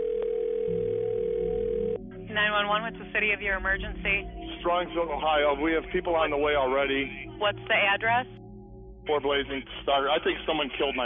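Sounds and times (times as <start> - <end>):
telephone ringback tone: 0.0 - 2.0.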